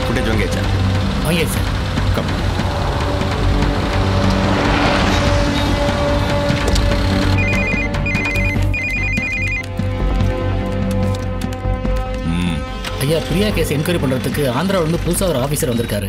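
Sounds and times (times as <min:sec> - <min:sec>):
film score sustained tones: 0:00.0 - 0:08.7
phone ringing: 0:07.4 - 0:09.7.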